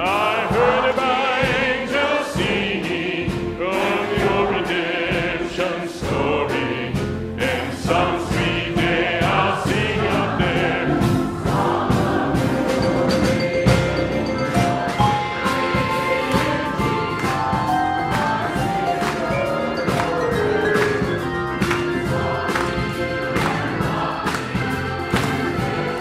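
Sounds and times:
choir singing a hymn: 0:00.0 - 0:26.0
drums and cymbals: 0:00.0 - 0:26.0.

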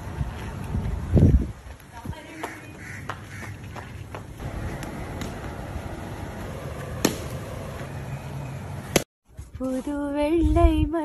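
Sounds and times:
low outdoor rumble: 0:04.4 - 0:09.1
cricket bat striking ball: 0:07.0 - 0:07.3.

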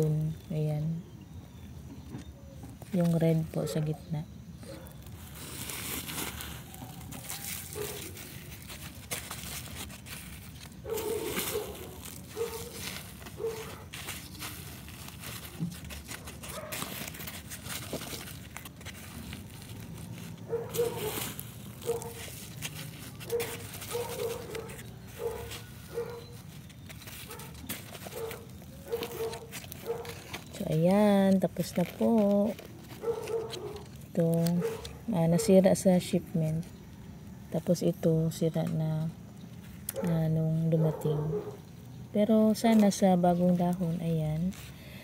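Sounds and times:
dry mulch rustling and crunching: 0:00.0 - 0:01.0, 0:02.4 - 0:45.0
dog barking: 0:07.8 - 0:08.2, 0:10.8 - 0:12.8, 0:13.4 - 0:13.9, 0:16.5 - 0:16.9, 0:20.5 - 0:21.2, 0:21.8 - 0:22.2, 0:23.2 - 0:26.4, 0:27.3 - 0:30.2, 0:33.0 - 0:33.9, 0:34.6 - 0:35.6, 0:39.9 - 0:41.7.

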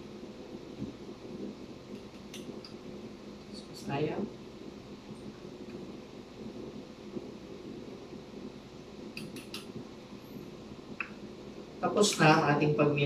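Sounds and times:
room hum: 0:00.0 - 0:13.0
sharp clicks: 0:01.9 - 0:02.8, 0:09.2 - 0:09.7.

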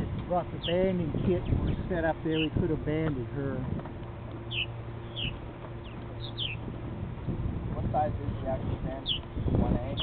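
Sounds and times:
steady low hum: 0:00.0 - 0:10.0
birds giving falling chirps: 0:04.4 - 0:06.6.

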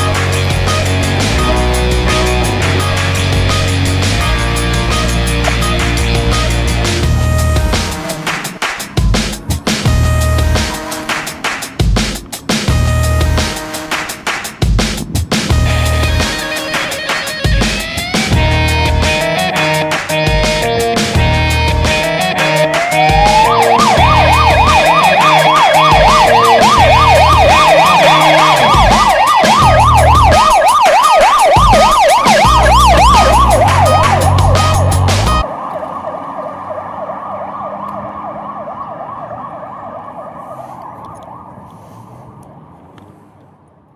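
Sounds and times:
ambulance siren yelping: 0:00.0 - 0:11.7, 0:15.5 - 0:41.7
rock music: 0:00.0 - 0:35.4.

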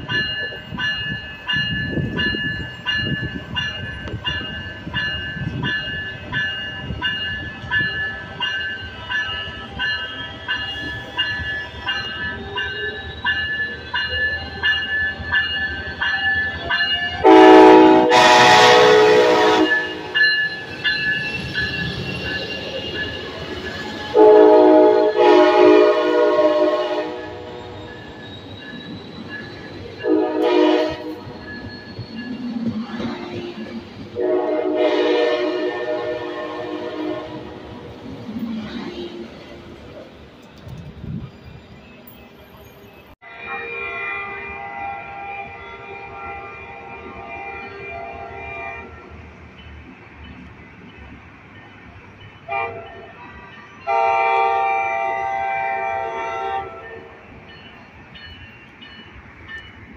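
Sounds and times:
warning bell ringing: 0:00.0 - 0:24.4
diesel locomotive engine rumbling: 0:00.0 - 0:59.9
train horn blasts: 0:17.2 - 0:20.2, 0:24.1 - 0:28.0, 0:30.0 - 0:31.4, 0:34.2 - 0:37.8, 0:43.2 - 0:49.2, 0:52.5 - 0:53.1, 0:53.9 - 0:57.3.

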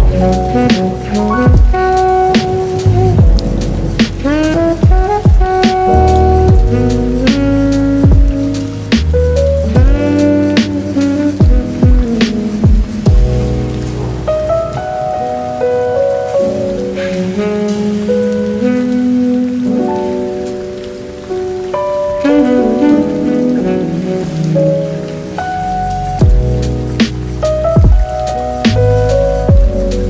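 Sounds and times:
drum beat with low kick: 0:00.0 - 0:13.6, 0:26.2 - 0:30.0
lo-fi keyboard chords: 0:00.0 - 0:30.0
steady rain: 0:00.0 - 0:30.0.

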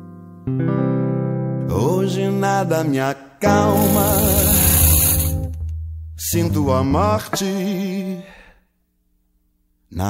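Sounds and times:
person singing with vibrato: 0:01.7 - 0:05.5, 0:06.2 - 0:08.6
instrumental backing and bass: 0:03.5 - 0:07.3.

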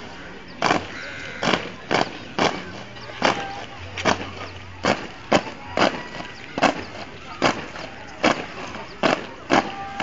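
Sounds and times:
boots stamping on brick paving: 0:00.0 - 0:10.0.

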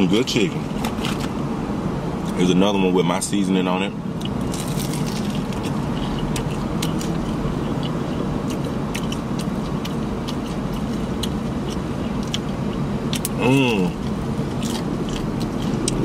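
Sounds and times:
crispy chicken being chewed: 0:04.1 - 0:16.0.

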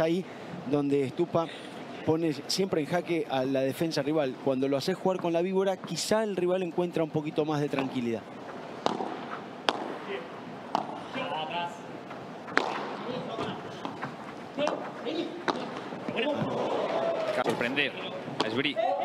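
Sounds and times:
padel ball hits: 0:08.8 - 0:10.0, 0:12.5 - 0:16.6
ball bouncing off walls: 0:08.8 - 0:10.1, 0:10.7 - 0:11.0, 0:12.0 - 0:16.6.

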